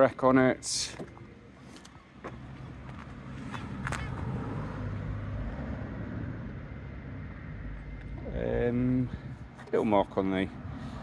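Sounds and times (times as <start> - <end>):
motor vehicle rumbling: 0.0 - 11.0.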